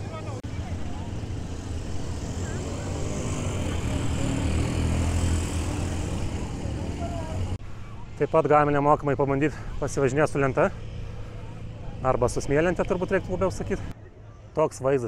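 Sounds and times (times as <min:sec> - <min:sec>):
quad bike engines droning: 0:00.0 - 0:14.5
faint voices: 0:05.9 - 0:08.6, 0:10.9 - 0:14.6.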